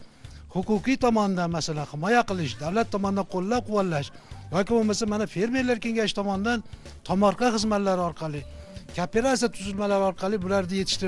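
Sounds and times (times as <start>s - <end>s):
person talking: 0.5s - 11.0s.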